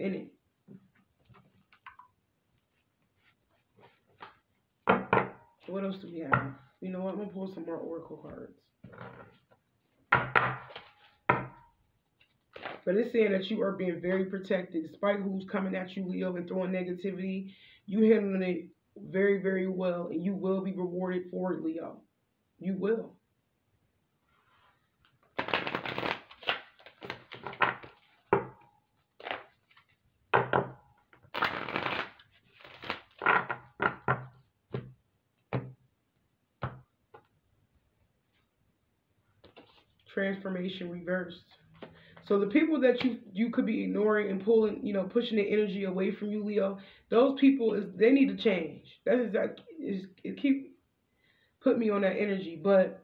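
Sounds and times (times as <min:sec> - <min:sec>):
cards being shuffled: 0:02.7 - 0:04.5, 0:10.6 - 0:11.2, 0:12.2 - 0:12.8, 0:25.0 - 0:28.3, 0:29.2 - 0:30.0, 0:31.2 - 0:33.6, 0:39.4 - 0:40.1
cards knocking on table: 0:04.2 - 0:05.4, 0:33.9 - 0:35.8, 0:36.6 - 0:37.3.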